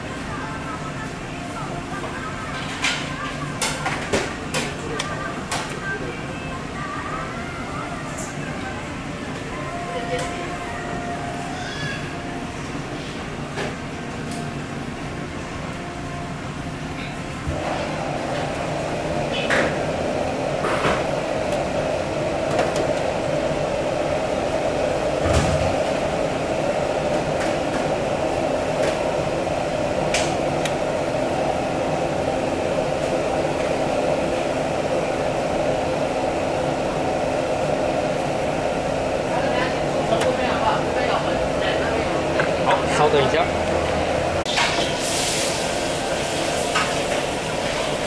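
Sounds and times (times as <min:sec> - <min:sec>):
steady mechanical hum: 0:00.0 - 0:48.0.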